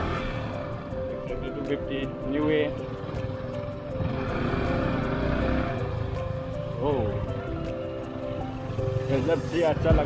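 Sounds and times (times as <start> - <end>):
motorcycle engine running: 2.5 - 10.0.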